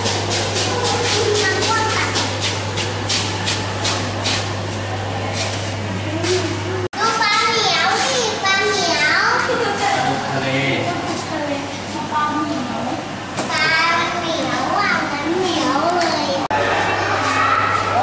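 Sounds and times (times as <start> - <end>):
children chattering and calling: 0.6 - 18.0.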